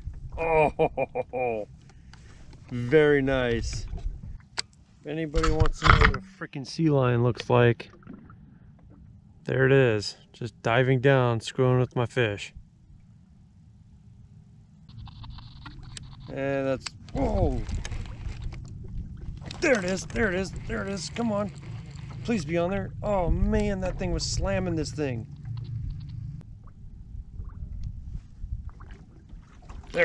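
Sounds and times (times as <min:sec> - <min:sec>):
wind and water rumble: 0:00.0 - 0:30.0
small clicks: 0:14.9 - 0:18.8
water against boat hull: 0:15.4 - 0:30.0.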